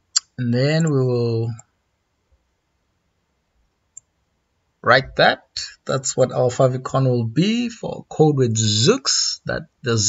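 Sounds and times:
man speaking: 0.2 - 1.6, 4.8 - 10.0.

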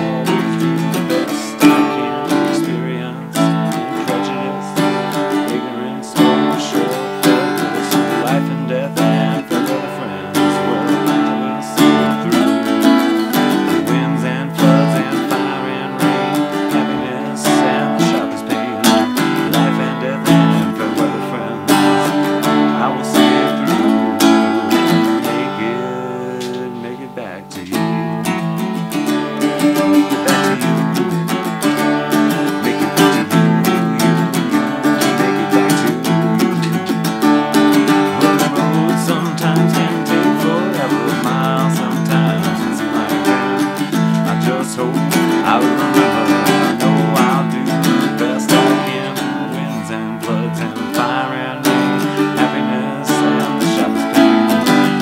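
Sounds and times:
acoustic guitar strumming folk song: 0.0 - 55.0.

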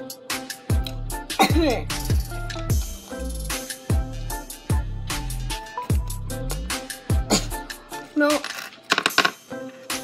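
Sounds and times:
pop music: 0.0 - 10.0
small object clattering on tabletop: 8.4 - 9.4.

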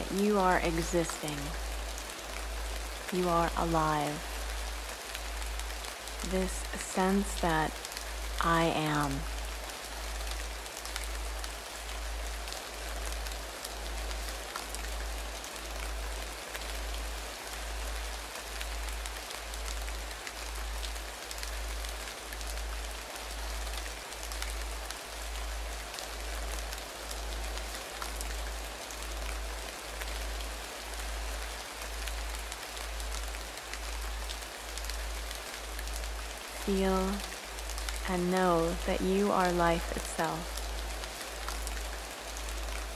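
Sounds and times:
steady rain-like hiss: 0.0 - 42.9.

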